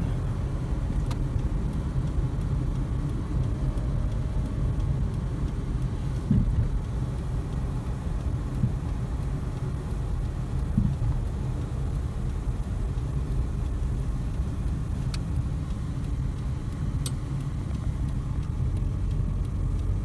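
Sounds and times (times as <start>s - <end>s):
car engine and tyres rumbling: 0.0s - 20.0s
light clicks: 1.0s - 20.0s.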